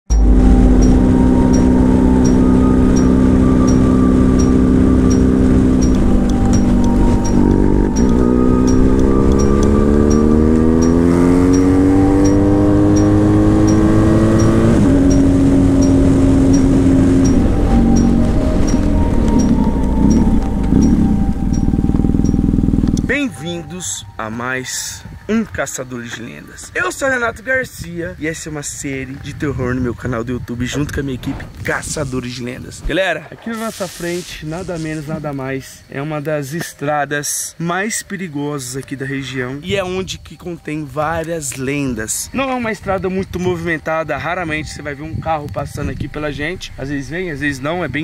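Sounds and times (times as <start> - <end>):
motorcycle engine accelerating: 0.1 - 23.2.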